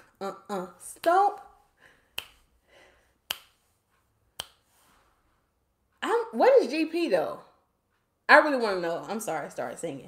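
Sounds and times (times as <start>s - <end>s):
finger snaps: 2.1s - 2.5s, 3.2s - 3.6s, 4.4s - 4.6s.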